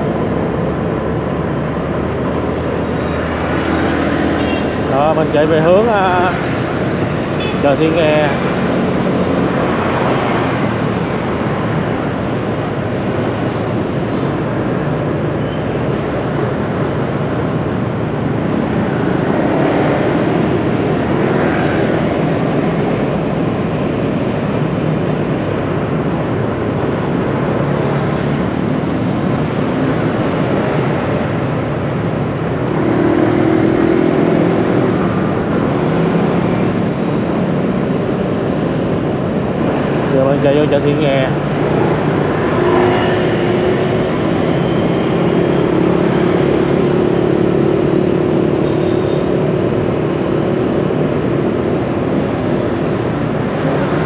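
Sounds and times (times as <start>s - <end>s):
dense street traffic: 0.0s - 54.0s.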